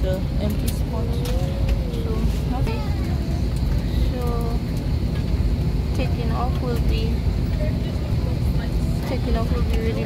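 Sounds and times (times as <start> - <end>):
airliner cabin rumble: 0.0 - 10.0
faint passenger voices: 0.0 - 10.0.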